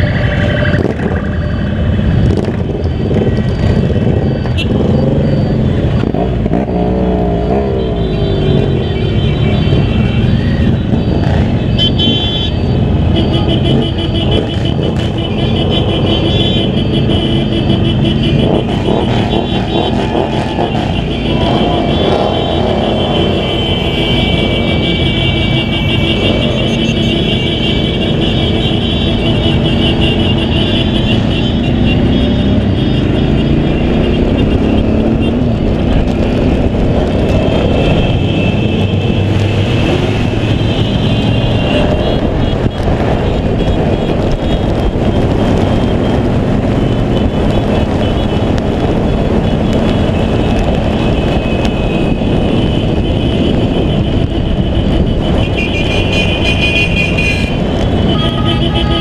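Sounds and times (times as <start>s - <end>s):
motorcycle engine: 0.0s - 59.0s
other vehicle engines: 0.0s - 59.0s.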